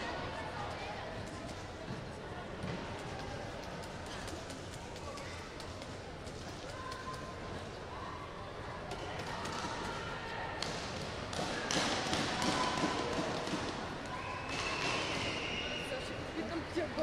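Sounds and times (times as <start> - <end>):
distant voices echoing: 9.2 - 16.8.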